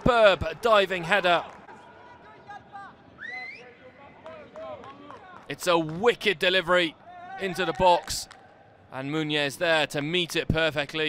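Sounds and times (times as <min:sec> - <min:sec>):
players shouting: 0:00.0 - 0:08.9.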